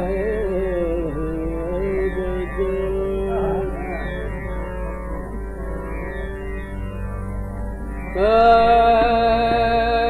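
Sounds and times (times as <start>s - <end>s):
man singing classical vocal: 0.0s - 4.7s, 8.2s - 10.0s
tanpura drone: 0.0s - 10.0s.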